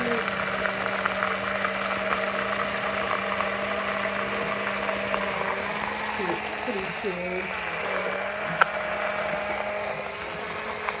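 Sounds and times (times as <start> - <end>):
blender motor humming: 0.0 - 11.0.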